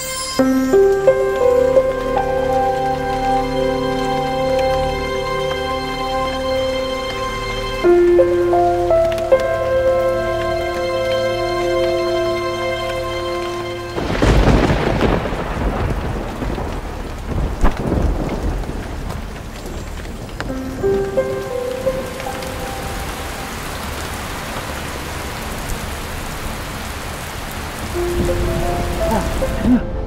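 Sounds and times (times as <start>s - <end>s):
heavy rain on pavement: 0.0s - 30.0s
thunder cracks: 14.0s - 20.7s.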